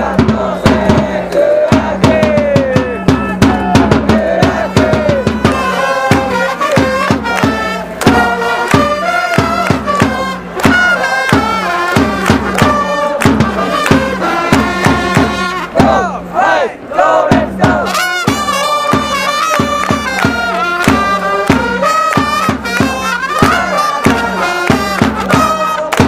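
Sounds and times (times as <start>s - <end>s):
steady drumbeat: 0.0s - 16.4s, 17.1s - 26.0s
crowd singing and chanting: 0.0s - 26.0s
trumpets playing: 3.0s - 16.6s, 17.8s - 26.0s.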